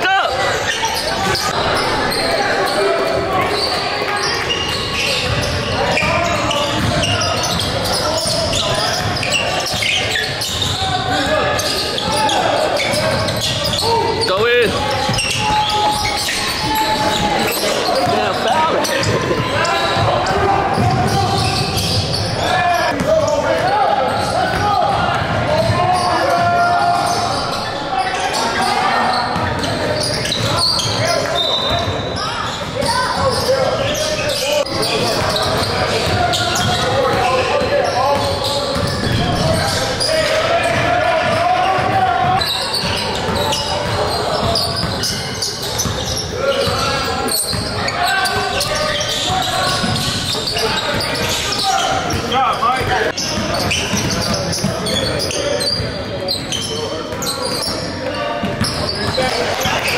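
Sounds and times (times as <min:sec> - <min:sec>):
indistinct shouts and talk: 0:00.0 - 0:59.9.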